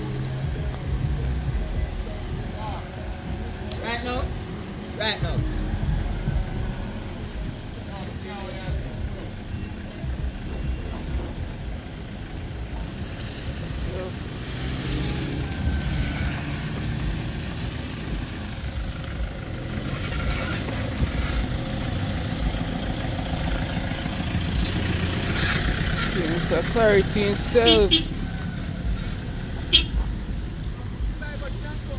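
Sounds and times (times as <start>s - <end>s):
tyres rolling through mud and gravel: 0.0s - 31.9s
vehicle engines at low speed: 0.0s - 31.9s.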